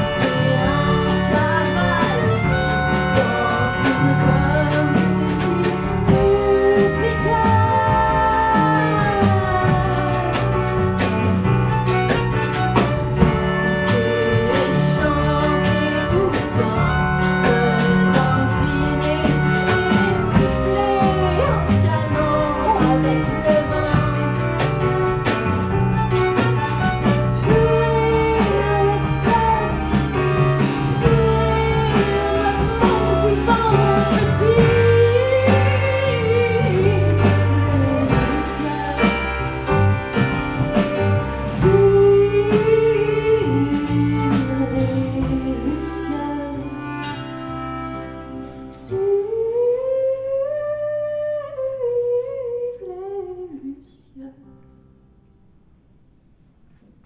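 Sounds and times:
live band chord: 0:00.0 - 0:48.8
drum kit: 0:00.0 - 0:49.0
electric bass: 0:00.0 - 0:49.7
violin: 0:00.0 - 0:49.8
electric piano: 0:00.0 - 0:52.7
clarinet: 0:00.0 - 0:54.4.

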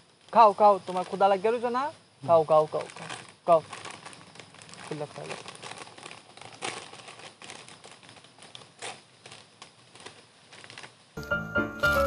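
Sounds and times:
packet wrapper crinkling: 0:02.7 - 0:12.0.

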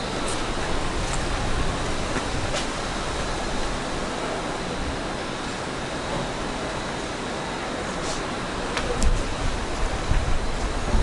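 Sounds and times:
steady rushing hiss: 0:00.0 - 0:11.0.

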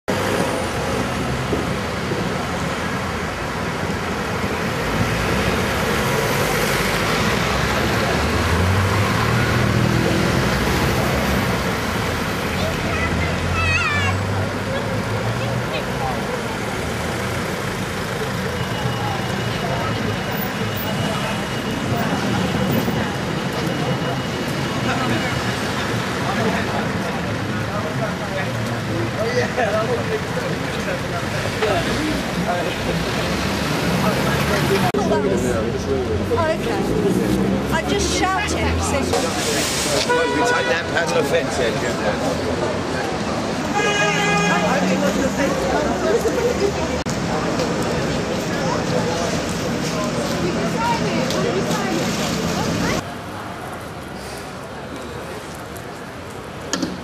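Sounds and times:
cars passing: 0:00.1 - 0:57.0.

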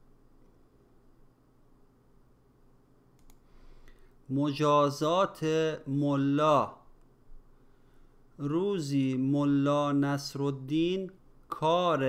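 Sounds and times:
faint clicks: 0:03.1 - 0:04.0.

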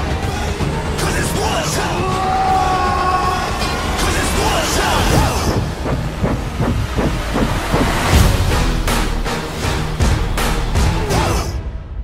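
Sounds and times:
swooping rush into rhythmic chop: 0:04.3 - 0:09.1
hissing noise: 0:05.0 - 0:08.3.

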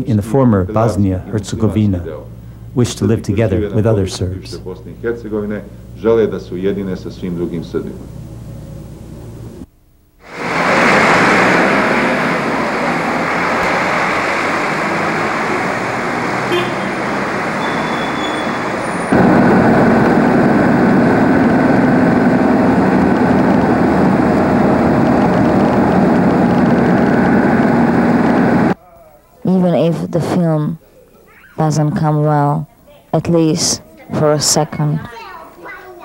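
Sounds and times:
car driving road noise: 0:10.2 - 0:28.8
cars passing: 0:10.2 - 0:28.8.

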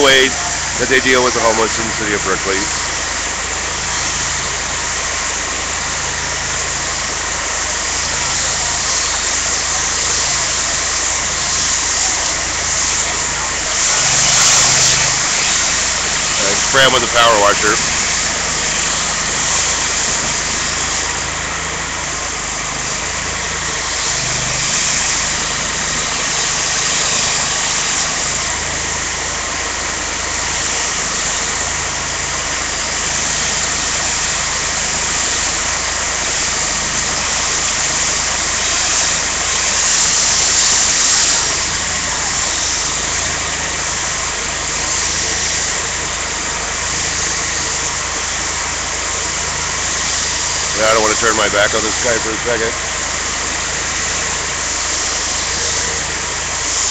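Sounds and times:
power washer running: 0:00.0 - 0:56.9.

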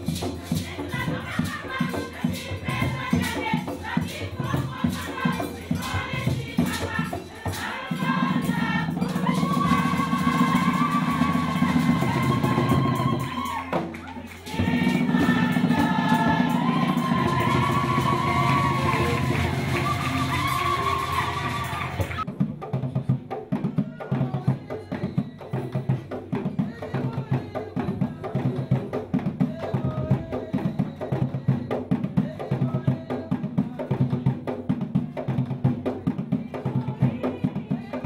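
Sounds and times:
women's choir singing: 0:00.0 - 0:22.3, 0:36.1 - 0:38.0
hand drumming: 0:00.0 - 0:24.4
percussion: 0:00.0 - 0:38.0
clapping: 0:18.0 - 0:22.2.

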